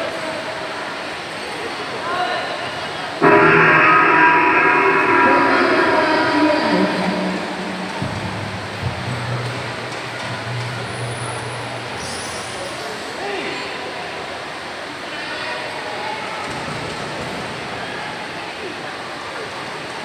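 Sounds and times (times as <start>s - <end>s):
horn-like droning tone: 3.2s - 12.3s.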